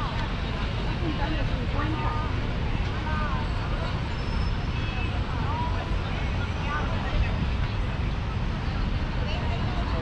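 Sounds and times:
people talking: 0:00.0 - 0:04.1, 0:04.9 - 0:10.0
low traffic rumble: 0:00.0 - 0:10.0.

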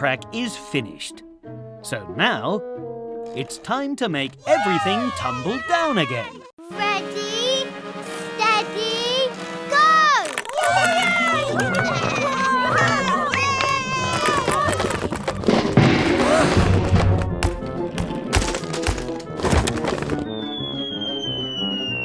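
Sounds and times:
background music: 0:00.0 - 0:22.0
excited cartoon voices: 0:04.4 - 0:07.6, 0:08.3 - 0:15.0
clatter of crashes and thuds: 0:14.5 - 0:20.2
long falling whistle: 0:20.2 - 0:22.0.

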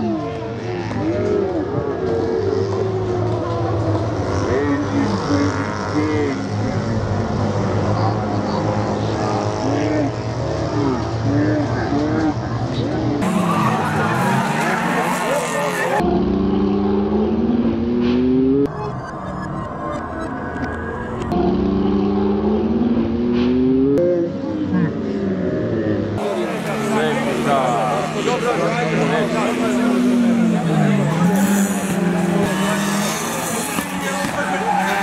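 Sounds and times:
spectators' voices: 0:00.0 - 0:17.1, 0:24.0 - 0:35.0
race car engines revving: 0:00.0 - 0:35.0.

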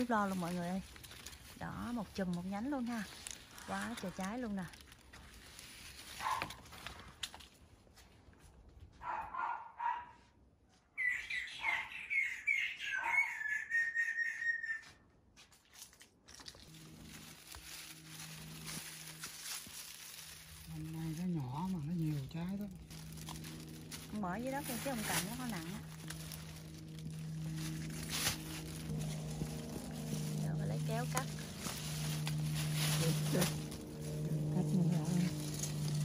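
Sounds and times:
songbird singing: 0:11.0 - 0:14.9, 0:17.8 - 0:36.0.

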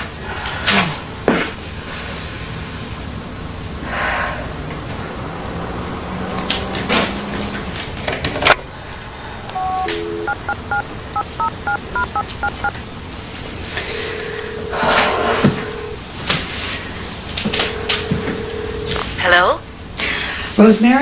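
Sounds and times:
steady telephone line tone: 0:09.5 - 0:12.8, 0:13.6 - 0:16.0, 0:17.4 - 0:19.6
two-tone keypad beeps: 0:09.6 - 0:12.8.

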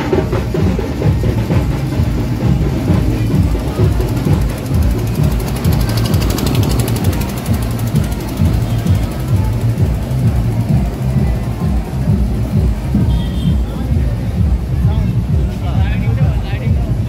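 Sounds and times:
fast bright rattling rhythm: 0:00.0 - 0:13.1
drum-heavy procession music: 0:00.0 - 0:17.0.

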